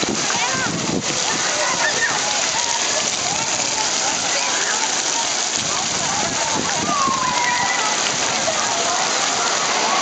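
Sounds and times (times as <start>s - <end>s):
children shouting and chattering: 0.0s - 10.0s
fountains spraying into water: 0.0s - 10.0s.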